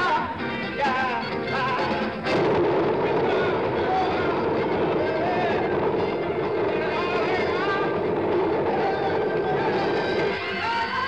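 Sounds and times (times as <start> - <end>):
many voices: 1.2 - 11.0
traffic noise: 1.3 - 11.0.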